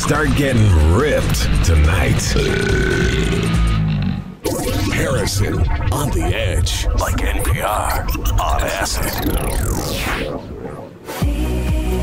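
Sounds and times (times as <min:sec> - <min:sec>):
background music: 0:00.0 - 0:07.3, 0:10.3 - 0:12.0
man burping: 0:02.1 - 0:04.4.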